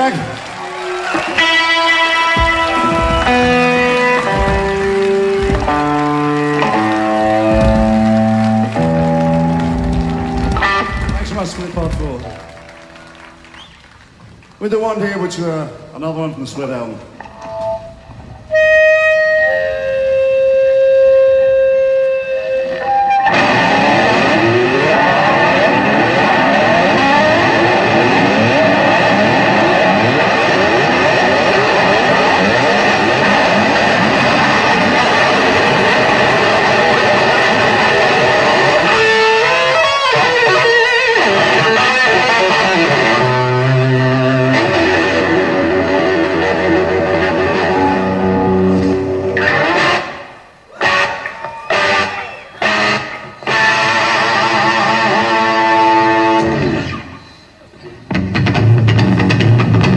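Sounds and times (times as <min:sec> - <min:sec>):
distorted electric guitar: 0:01.0 - 0:13.6, 0:17.2 - 0:59.9
low bass notes: 0:01.4 - 0:12.9.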